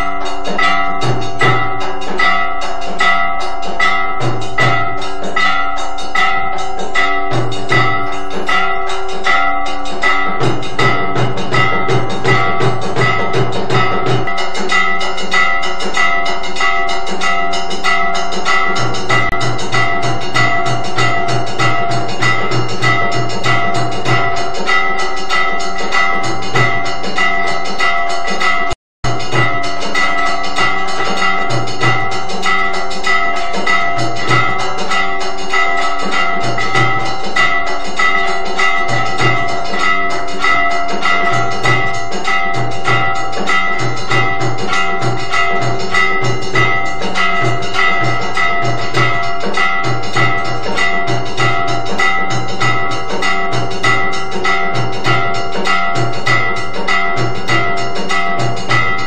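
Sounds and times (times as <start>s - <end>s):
bells and metal gongs ringing: 0.0s - 59.0s
deep drum beating: 0.0s - 59.0s.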